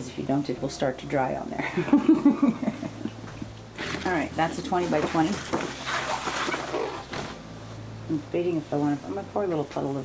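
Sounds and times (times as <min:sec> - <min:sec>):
paper towel rustling: 0:03.8 - 0:07.8.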